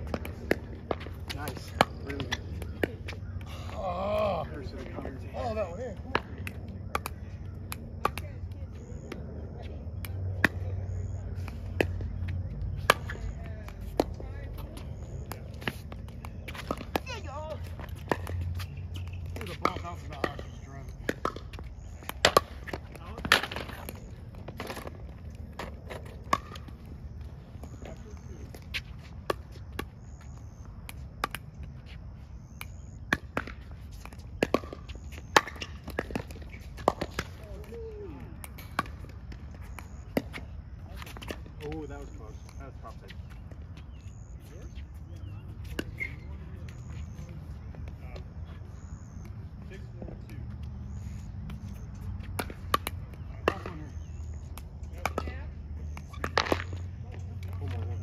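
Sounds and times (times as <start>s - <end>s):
ball bouncing on hard court: 0.0s - 3.2s, 11.4s - 26.7s, 32.6s - 37.8s.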